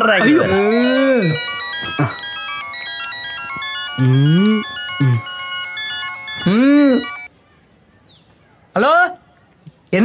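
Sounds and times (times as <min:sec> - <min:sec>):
beeping electronic ringtone melody: 0:00.0 - 0:07.3
person singing: 0:04.0 - 0:05.4.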